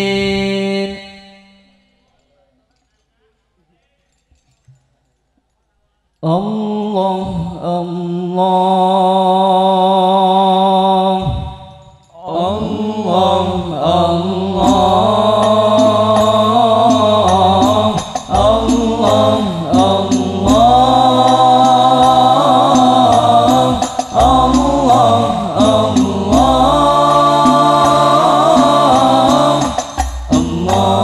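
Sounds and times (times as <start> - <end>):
group singing devotional chant: 0.0 - 1.4, 6.2 - 31.0
frame drums beating: 14.6 - 31.0.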